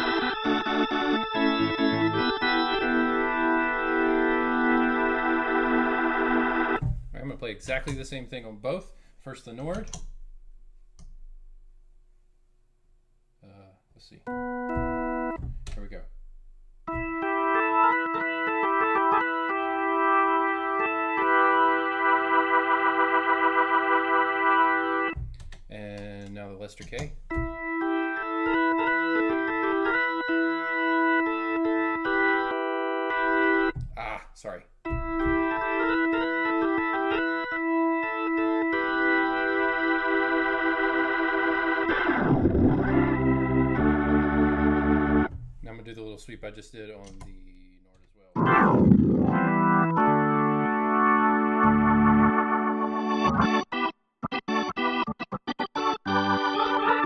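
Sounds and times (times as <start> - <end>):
organ chords with rotary wobble: 0.0 - 7.0, 14.3 - 16.3, 16.9 - 25.2, 27.2 - 34.2, 34.9 - 45.6, 48.4 - 57.0.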